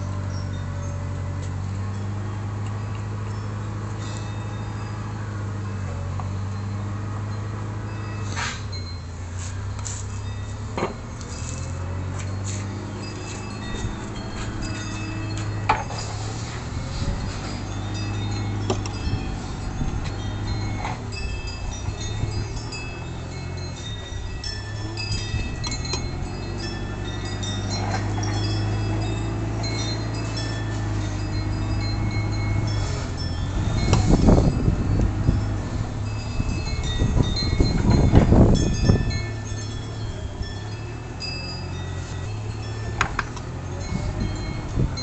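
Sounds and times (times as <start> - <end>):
wind chimes ringing: 0.0 - 45.0.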